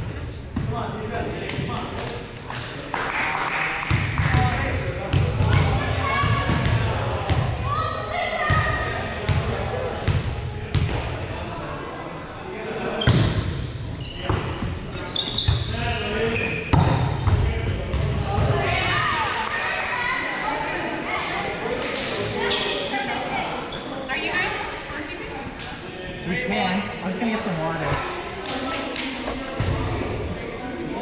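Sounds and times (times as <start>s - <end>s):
players' voices and calls echoing: 0.0s - 31.0s.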